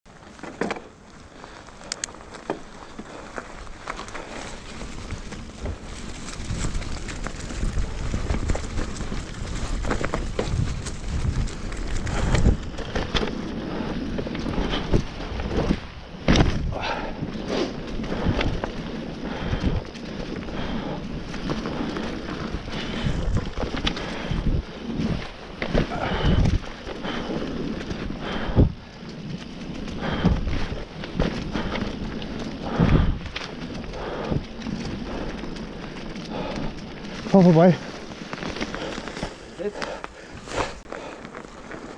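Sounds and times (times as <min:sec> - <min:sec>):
bike knocks and rattles: 0:00.1 - 0:41.9
tyres crackling through dry leaves: 0:00.1 - 0:41.9
wind on microphone: 0:04.5 - 0:37.1.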